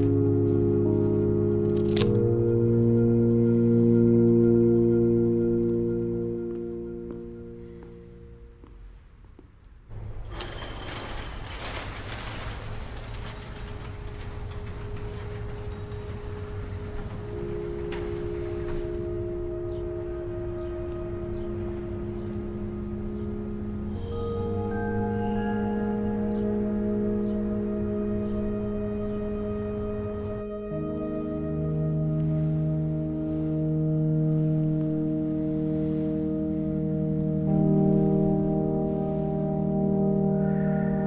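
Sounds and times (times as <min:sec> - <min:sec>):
garage door rolling open: 0:09.9 - 0:34.6
ambient drone with bell-like ring: 0:14.6 - 0:41.0.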